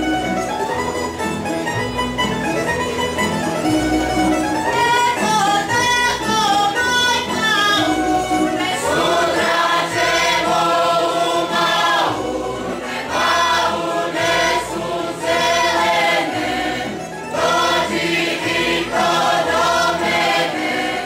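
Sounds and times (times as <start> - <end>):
string band with double bass: 0.0 - 21.0
group singing folk song: 3.8 - 21.0.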